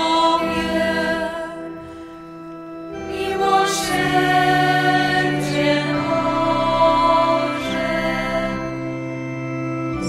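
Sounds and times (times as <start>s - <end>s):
choir singing a hymn: 0.0s - 1.9s, 2.9s - 10.0s.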